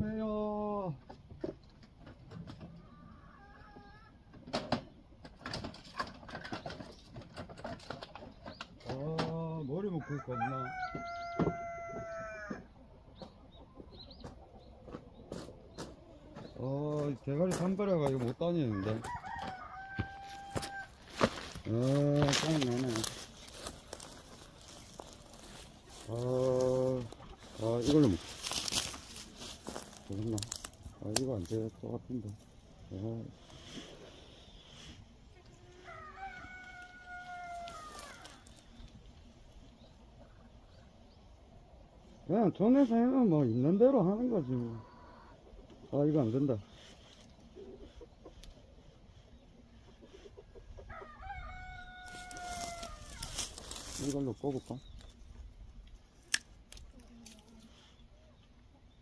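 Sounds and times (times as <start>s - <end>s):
rooster crowing: 9.9s - 12.7s, 18.6s - 21.6s, 35.6s - 38.6s, 50.8s - 53.5s.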